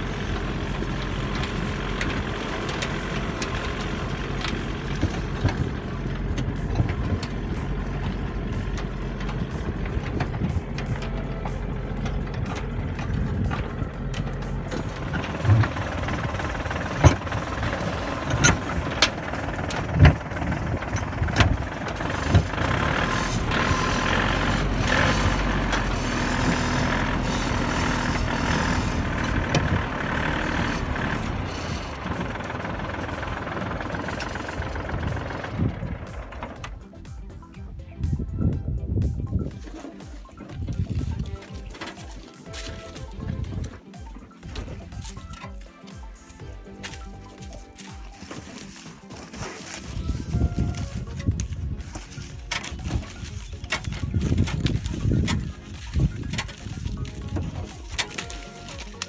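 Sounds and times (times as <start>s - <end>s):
sharp knocks and rattles: 0.0s - 37.2s
tractor diesel engine running: 0.0s - 59.0s.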